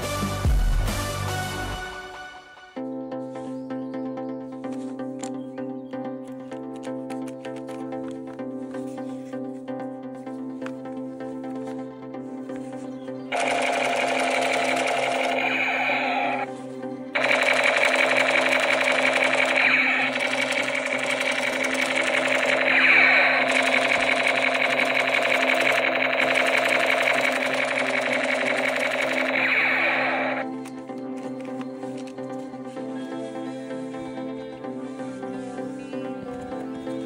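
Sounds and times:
background music: 0.0s - 37.0s
toy gun electronic rapid-fire: 13.3s - 16.5s, 17.2s - 30.5s.

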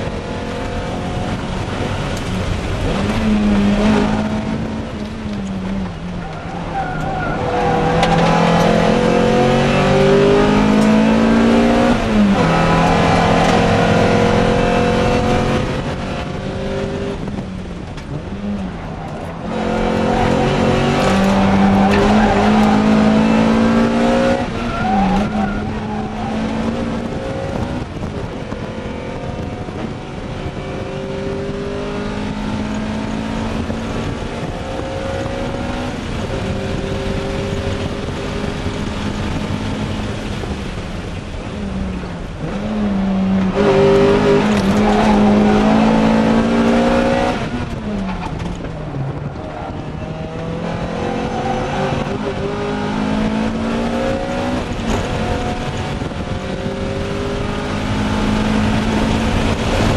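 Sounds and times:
car engine accelerating: 0.0s - 59.9s.

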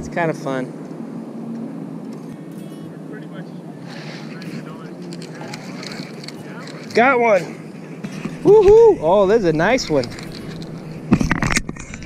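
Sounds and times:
wind on microphone: 8.0s - 12.0s.

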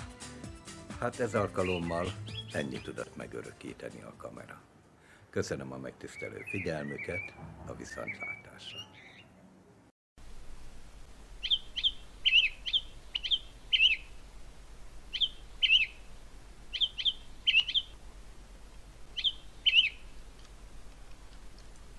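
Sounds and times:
bird chirping: 1.4s - 3.3s, 6.0s - 9.5s, 11.4s - 14.3s, 15.0s - 18.0s, 19.0s - 20.5s.

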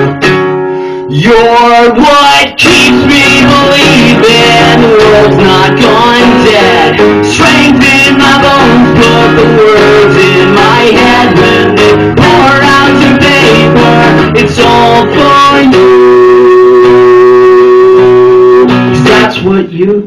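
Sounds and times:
acoustic guitar strummed: 0.0s - 20.0s
man singing: 1.1s - 20.0s.

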